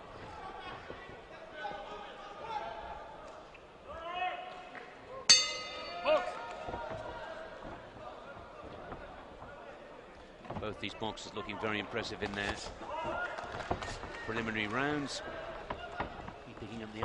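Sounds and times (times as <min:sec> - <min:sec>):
murmur of voices: 0:00.0 - 0:17.0
boxing ring bell clang: 0:05.3 - 0:06.6.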